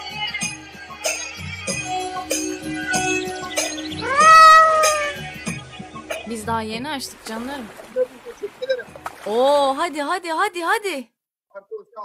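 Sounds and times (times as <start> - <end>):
background music with a beat: 0.0 - 6.4
cartoon cat meowing: 4.0 - 5.2.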